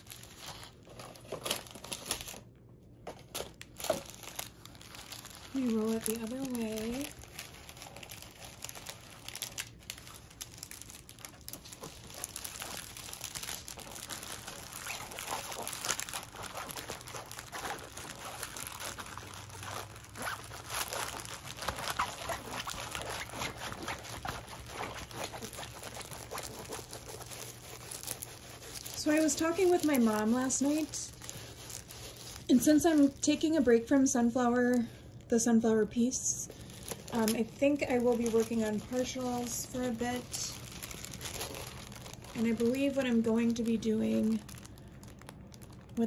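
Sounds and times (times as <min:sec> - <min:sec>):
packaging crinkling and rustling: 0:00.0 - 0:35.1, 0:35.9 - 0:46.0.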